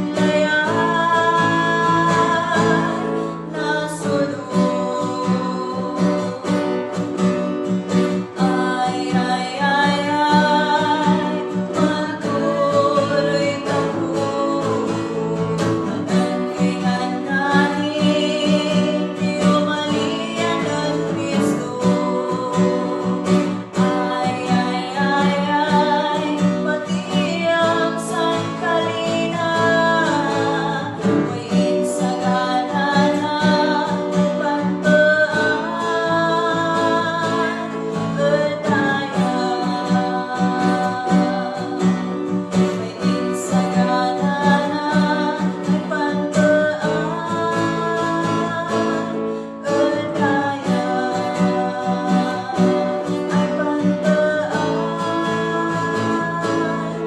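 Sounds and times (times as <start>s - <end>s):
woman singing: 0.0s - 57.0s.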